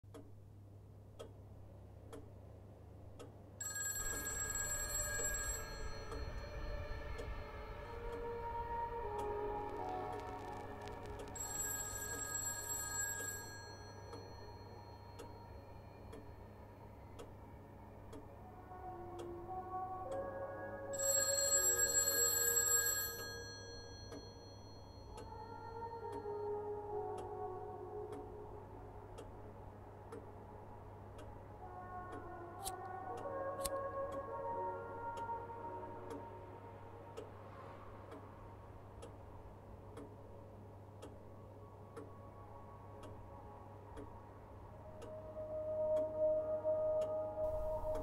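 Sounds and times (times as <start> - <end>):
clock ticking: 0.1 - 19.3, 21.0 - 27.4
bell ringing: 3.6 - 8.4, 11.3 - 16.4
soft slow music: 4.0 - 48.0.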